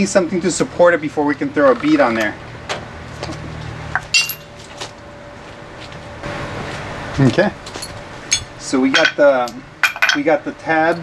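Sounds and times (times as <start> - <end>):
steel pieces clinking: 4.0 - 4.6, 7.7 - 11.0.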